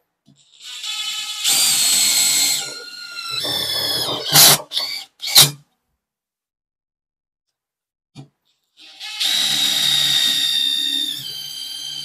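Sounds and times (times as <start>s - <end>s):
impact driver whining: 1.5s - 5.6s.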